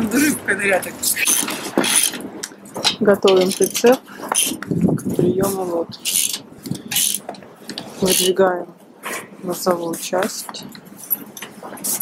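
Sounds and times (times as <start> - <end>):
metal scraping and rattling: 1.0 - 8.4.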